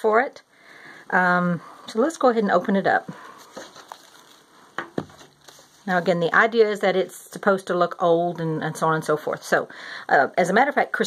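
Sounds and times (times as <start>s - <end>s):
paper and card rustling: 3.1s - 6.3s.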